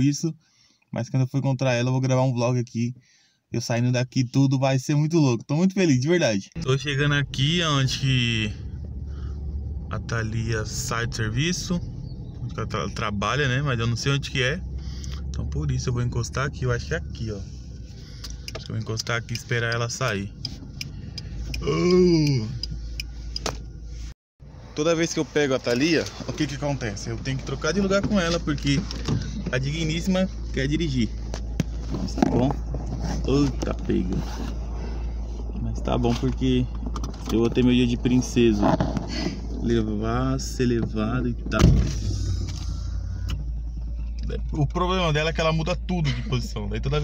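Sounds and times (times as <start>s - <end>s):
low car engine rumble: 6.6s - 47.0s
car indicator ticking: 18.2s - 23.6s.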